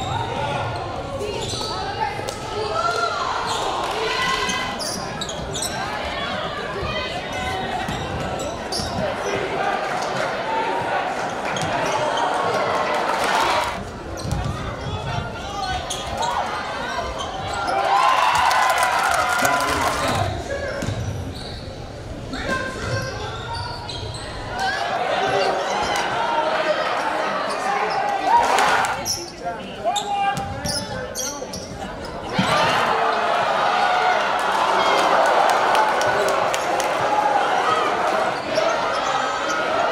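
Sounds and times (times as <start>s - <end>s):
players and crowd calling out: 0.0s - 39.9s.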